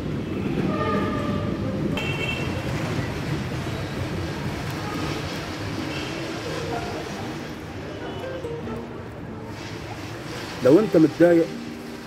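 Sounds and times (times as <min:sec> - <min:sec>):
street rumble: 0:00.0 - 0:12.0.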